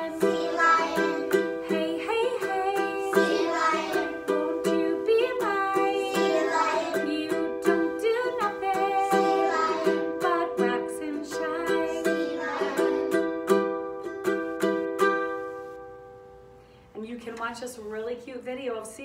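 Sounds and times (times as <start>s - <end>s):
woman singing: 0.0s - 0.8s, 1.5s - 12.4s
ukulele strumming: 0.0s - 16.6s.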